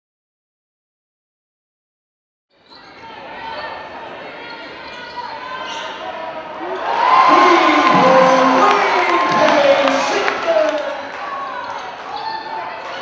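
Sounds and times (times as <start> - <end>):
voices and shouting: 2.9 - 13.0.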